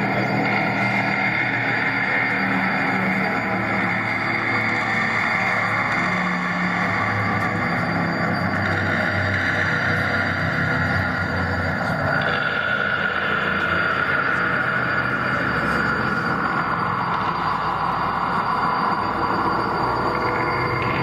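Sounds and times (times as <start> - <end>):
dense wash of noise: 0.0 - 21.0
electronic drone: 0.0 - 21.0
sustained low tones: 0.0 - 21.0.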